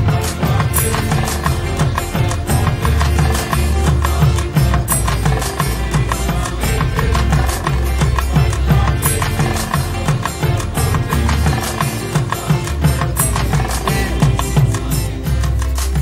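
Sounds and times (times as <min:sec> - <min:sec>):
deep bass: 0:00.0 - 0:16.0
drum beat: 0:00.0 - 0:16.0
group singing: 0:00.0 - 0:16.0.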